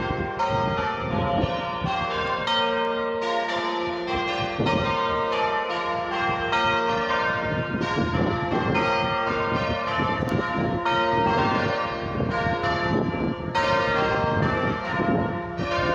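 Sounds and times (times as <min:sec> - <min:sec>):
church bells change ringing: 0:00.0 - 0:15.9.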